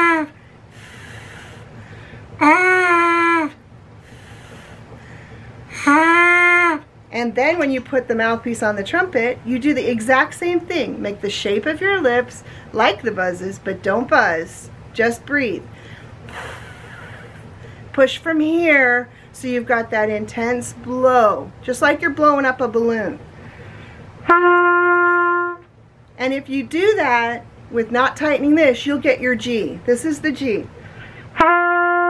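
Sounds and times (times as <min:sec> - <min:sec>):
breathy blowing through mouthpiece: 0:00.4 - 0:02.6, 0:04.0 - 0:05.8
buzzed trumpet mouthpiece notes: 0:24.3 - 0:25.7, 0:31.4 - 0:32.0.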